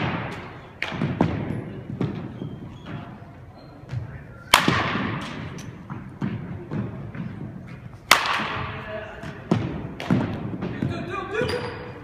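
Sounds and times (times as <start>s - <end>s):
balls bouncing on wooden floor: 0.0s - 3.2s, 3.8s - 12.0s.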